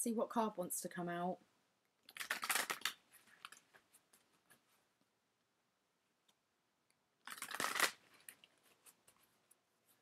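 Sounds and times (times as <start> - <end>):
cards riffling: 2.1 - 3.8, 7.2 - 9.2.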